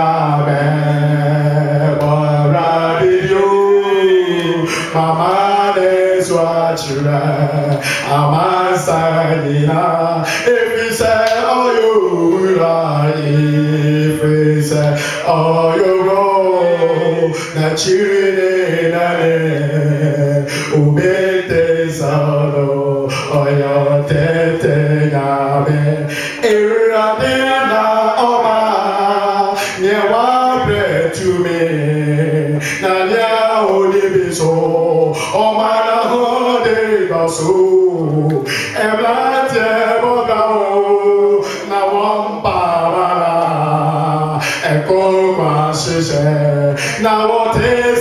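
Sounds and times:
man singing unaccompanied: 0.0 - 48.0.

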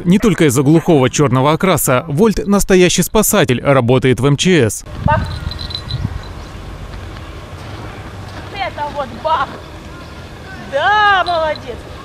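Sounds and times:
low outdoor rumble: 4.7 - 12.0.

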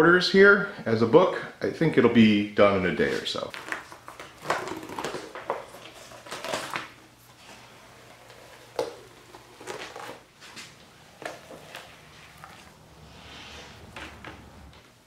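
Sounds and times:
crackling and crinkling: 3.0 - 15.0.

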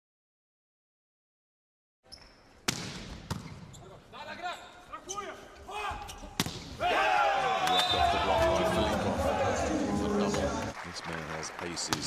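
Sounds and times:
shoe squeaks on court: 2.0 - 2.6, 3.3 - 4.0
volleyball hits: 2.6 - 3.6, 6.3 - 6.8
crowd cheering: 6.8 - 12.0.

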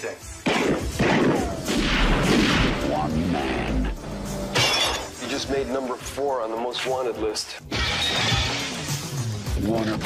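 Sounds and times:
glass breaking crash: 4.5 - 5.2.

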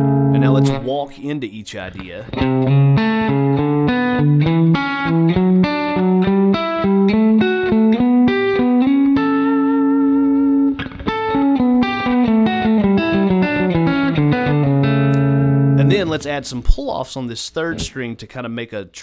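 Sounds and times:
clean electric guitar notes: 0.0 - 0.8, 2.3 - 16.1.

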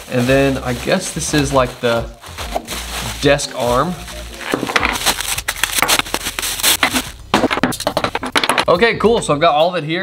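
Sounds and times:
plastic packaging crinkling: 0.0 - 8.3
parts clattering on wooden desk: 7.4 - 8.7.

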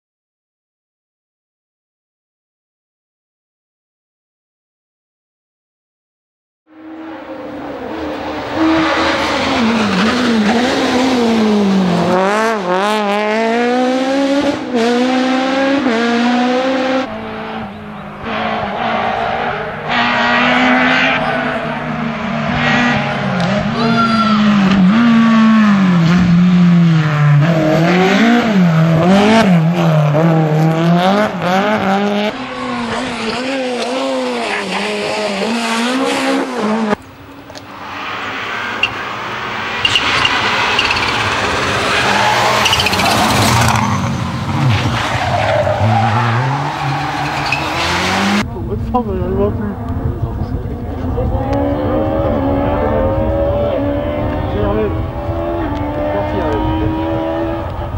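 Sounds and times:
rally car engines revving: 6.7 - 57.9.

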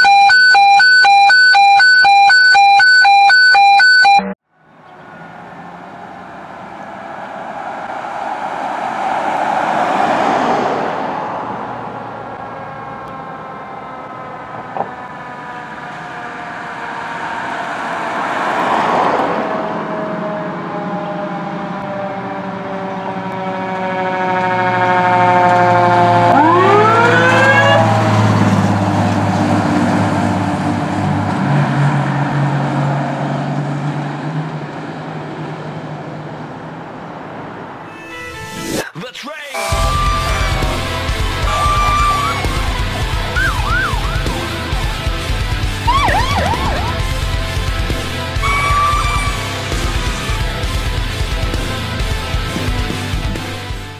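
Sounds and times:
loud electronic tone: 0.0 - 4.4, 39.6 - 50.4
fire truck engine rumble: 0.0 - 37.8, 39.6 - 53.9
fire engine siren wailing: 0.0 - 38.7, 39.6 - 53.2.

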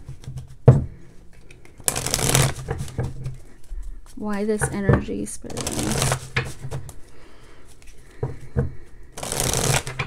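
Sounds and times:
cards riffle shuffling: 1.3 - 4.2, 5.5 - 8.1, 9.2 - 10.0.

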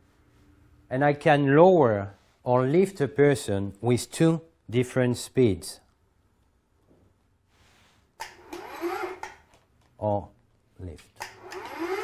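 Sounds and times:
electric motor whine rising: 8.4 - 9.3.

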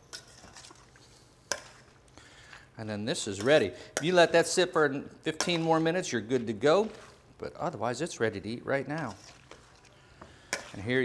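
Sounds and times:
spoon scraping bowl: 0.0 - 1.9, 5.4 - 7.2, 9.0 - 11.0.

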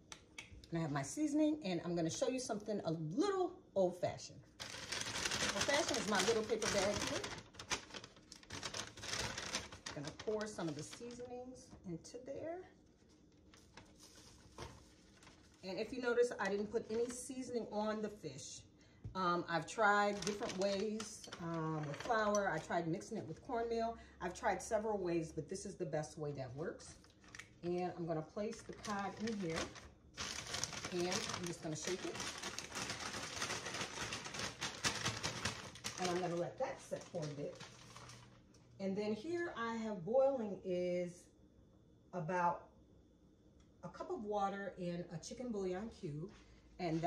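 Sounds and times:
seasoning pouring into paper bag: 4.6 - 10.6, 28.8 - 36.4.

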